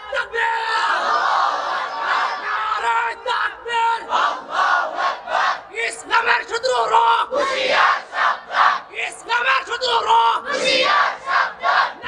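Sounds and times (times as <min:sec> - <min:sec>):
man preaching through microphones: 0:00.0 - 0:01.0, 0:02.5 - 0:04.1, 0:05.7 - 0:07.4, 0:08.9 - 0:10.5.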